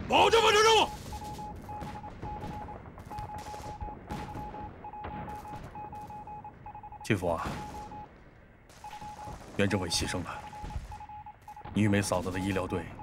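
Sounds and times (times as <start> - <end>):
gunfire shots and bursts: 0.0 - 13.0
morse code beeping: 0.5 - 8.1, 8.8 - 13.0.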